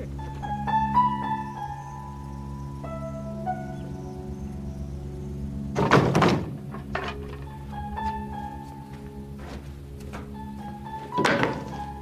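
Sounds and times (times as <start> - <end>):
soft background music: 0.0 - 12.0
wooden boards thunking into truck bed: 5.7 - 8.2, 9.4 - 10.4, 11.0 - 12.0.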